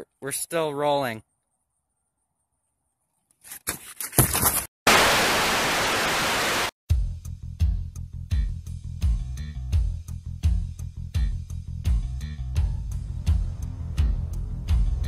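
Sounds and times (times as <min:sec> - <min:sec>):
tv static hiss: 0:04.9 - 0:06.7.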